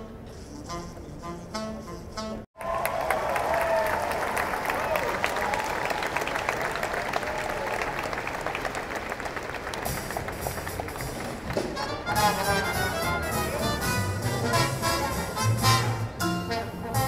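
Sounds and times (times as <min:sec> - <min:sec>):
audience applauding: 0:02.6 - 0:12.1
band music: 0:09.8 - 0:17.0.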